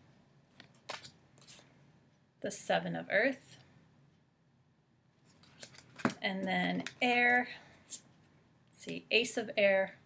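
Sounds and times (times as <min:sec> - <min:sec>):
cards clicking and rustling: 0:00.6 - 0:01.6, 0:05.3 - 0:07.0.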